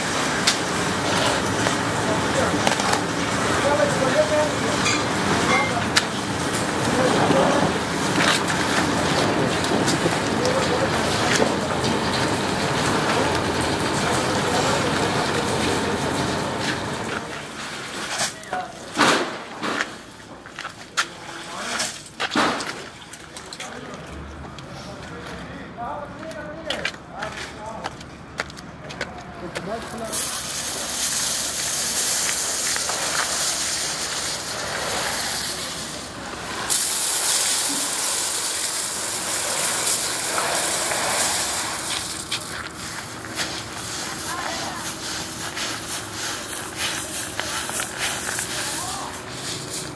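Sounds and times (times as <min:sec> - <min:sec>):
plastic flakes pouring onto concrete: 0:00.0 - 0:18.5, 0:29.6 - 0:49.9
indistinct voices: 0:37.5 - 0:49.9
flakes scuffed underfoot: 0:39.6 - 0:49.9.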